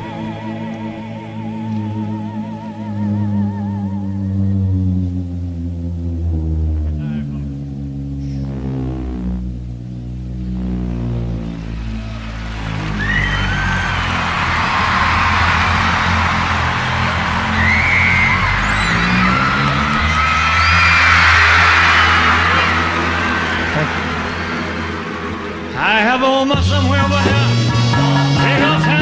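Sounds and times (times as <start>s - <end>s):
live band holding chords: 10.3s - 29.0s
audience cheering and screaming: 11.6s - 27.7s.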